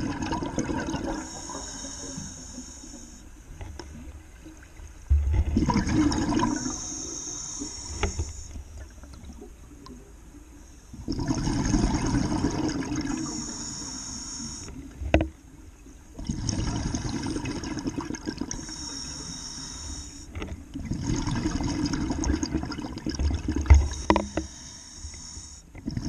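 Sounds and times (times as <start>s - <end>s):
air bubbling underwater: 5.1s - 6.8s.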